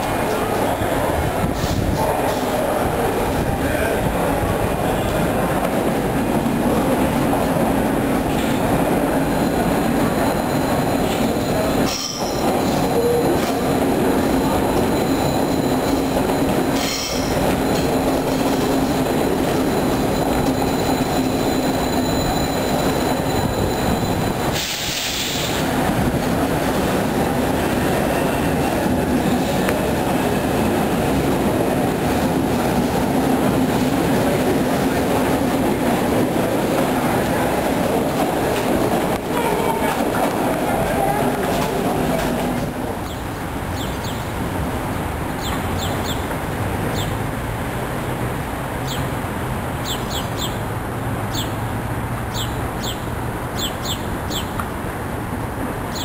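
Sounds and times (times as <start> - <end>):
train wheels rumbling on rail: 0.0 - 56.0
high wheel squeal: 8.3 - 25.7.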